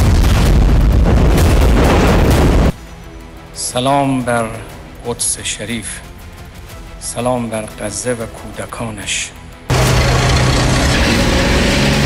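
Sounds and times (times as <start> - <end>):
heavy engine drone: 9.7 - 12.0
tank track noise: 9.7 - 12.0.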